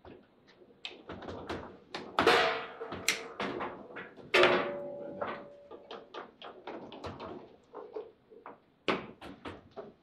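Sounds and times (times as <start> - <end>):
foosball ball and rods clacking: 0.9 - 10.0.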